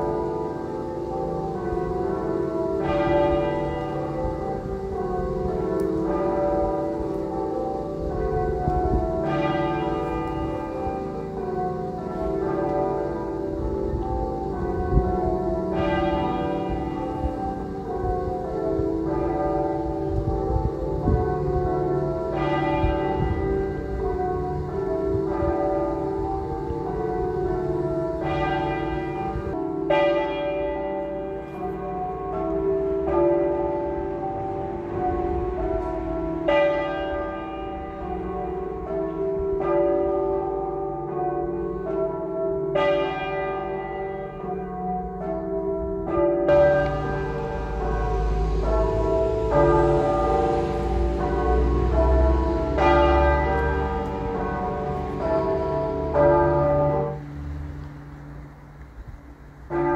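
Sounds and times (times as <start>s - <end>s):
church bells ringing: 0.0s - 59.9s.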